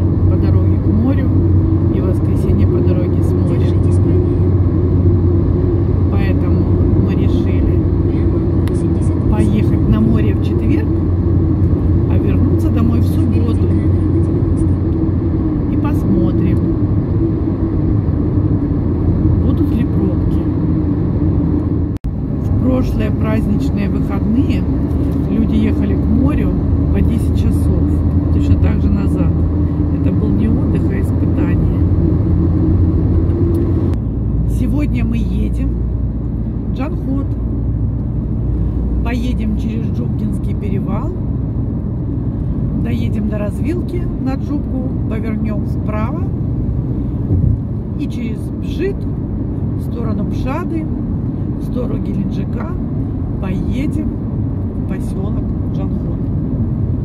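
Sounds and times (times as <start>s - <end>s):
car engine and tyre noise: 0.0s - 57.0s.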